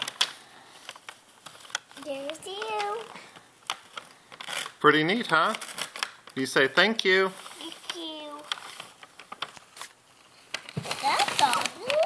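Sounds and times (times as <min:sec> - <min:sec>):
wrapping paper crinkling: 0:00.0 - 0:12.0.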